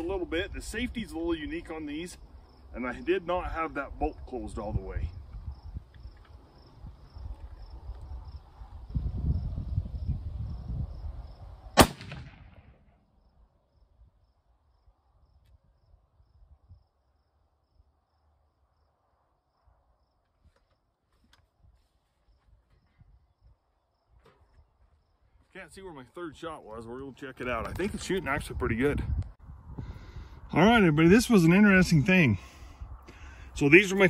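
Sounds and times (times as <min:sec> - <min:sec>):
insects chirping: 0:00.0 - 0:11.8, 0:13.2 - 0:21.3, 0:22.0 - 0:26.0
rifle shot: 0:11.8 - 0:13.0.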